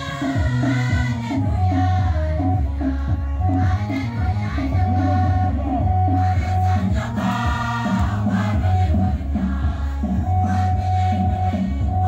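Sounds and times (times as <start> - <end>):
large choir singing: 0.0 - 12.0.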